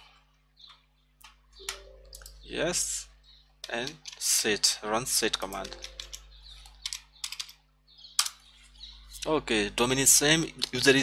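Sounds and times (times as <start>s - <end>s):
keyboard keystrokes: 5.4s - 6.2s.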